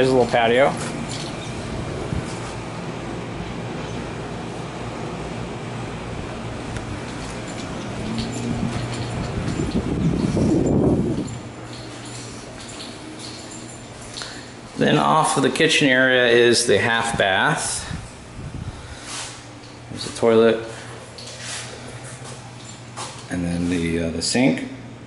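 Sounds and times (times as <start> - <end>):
low hum: 0.0 - 15.5.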